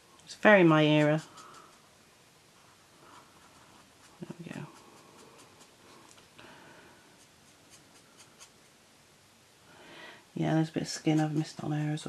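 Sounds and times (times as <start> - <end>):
marker scratching on paper: 7.2 - 8.6.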